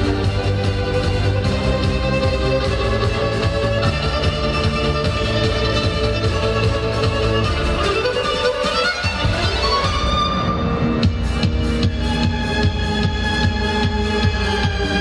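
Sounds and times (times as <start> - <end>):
driving beat: 0.0 - 15.0
electronic dance backing track: 0.0 - 15.0
violin melody: 0.0 - 15.0.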